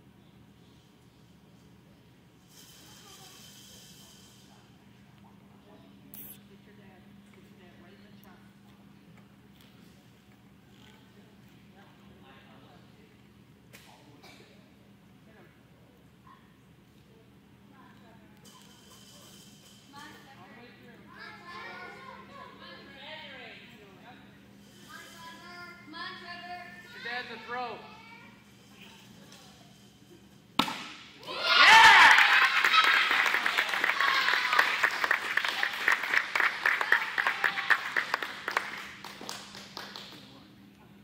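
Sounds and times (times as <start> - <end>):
steady low hum: 0.0 - 31.3
chatter of voices: 18.2 - 30.4
people cheering: 31.2 - 38.7
audience clapping: 31.7 - 40.3.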